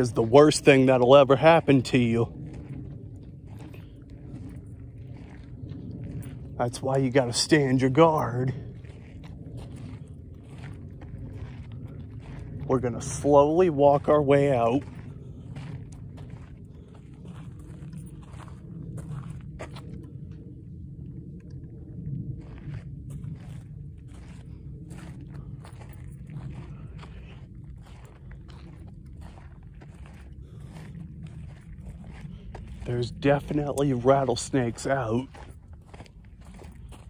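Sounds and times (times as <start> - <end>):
footsteps crunching on dirt: 0.0 - 37.0
steady low rumble: 0.0 - 37.0.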